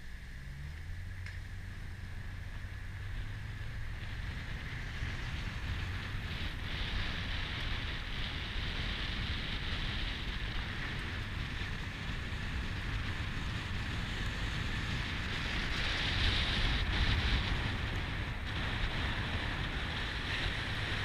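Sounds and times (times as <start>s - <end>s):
wind noise on microphone: 0.9s - 21.0s.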